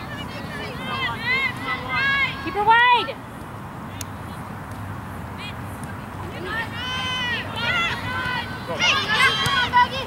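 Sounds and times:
women shouting: 0:00.0 - 0:03.2, 0:06.3 - 0:10.0
open-air noise: 0:00.0 - 0:10.0.

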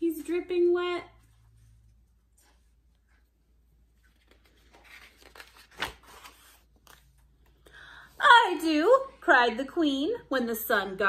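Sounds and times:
book page turning: 0:01.2 - 0:07.6
sharp papery flap: 0:04.4 - 0:07.0.

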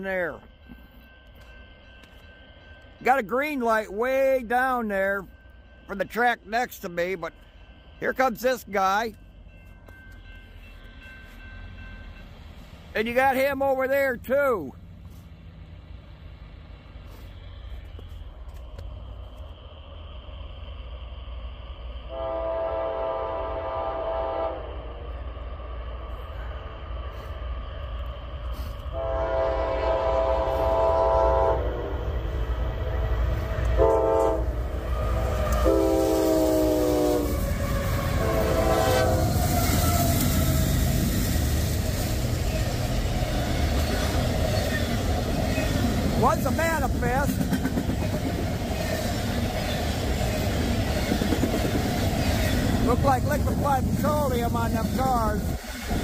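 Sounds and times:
train rumbling past: 0:00.0 - 0:56.0
locomotive horn blasts: 0:22.1 - 0:25.0, 0:28.9 - 0:32.0, 0:33.8 - 0:40.2.

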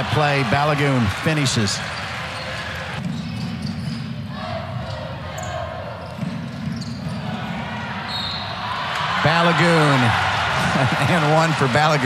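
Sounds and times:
basketball bouncing on court: 0:01.8 - 0:07.7.

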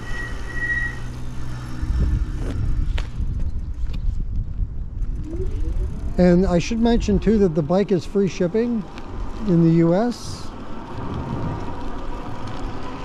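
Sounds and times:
wind rushing over microphone: 0:01.4 - 0:13.0
tyre rumble: 0:10.6 - 0:13.0.

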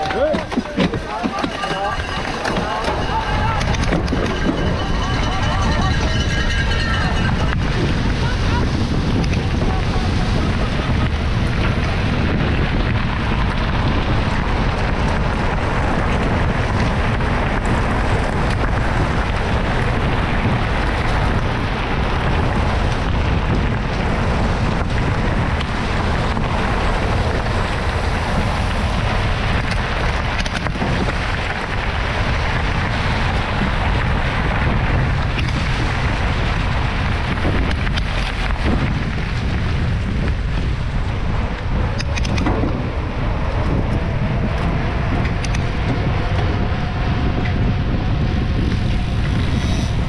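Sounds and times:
bike clicks and rattles: 0:00.0 - 0:50.0
tyres rolling on gravel: 0:00.0 - 0:50.0
wind on microphone: 0:00.0 - 0:50.0.

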